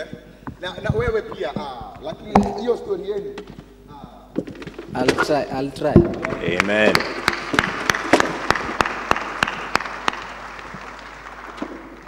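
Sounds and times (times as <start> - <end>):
audience applauding: 6.1 - 12.0.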